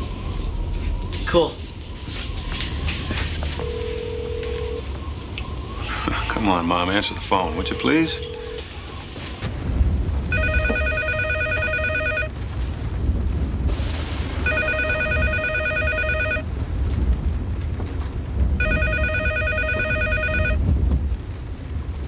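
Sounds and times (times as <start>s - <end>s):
steady low rumble: 0.0s - 22.0s
landline telephone ringing: 3.6s - 4.8s, 10.3s - 12.3s, 14.5s - 16.4s, 18.6s - 20.6s.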